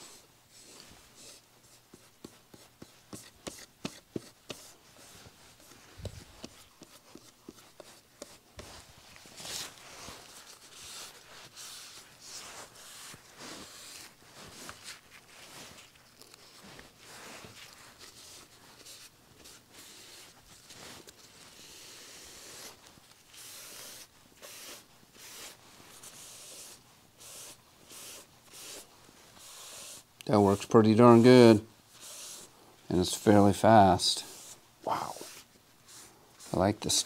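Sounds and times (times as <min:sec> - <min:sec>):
paper towel rubbing on wet decal: 0:00.5 - 0:37.0.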